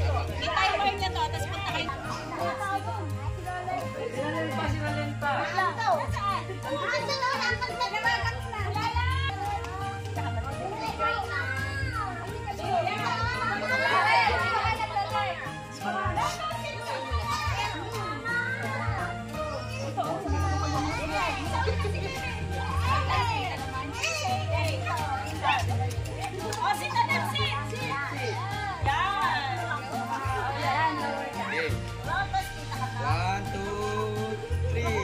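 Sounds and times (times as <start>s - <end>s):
children and adults chattering: 0.0s - 35.0s
music playing: 0.0s - 35.0s.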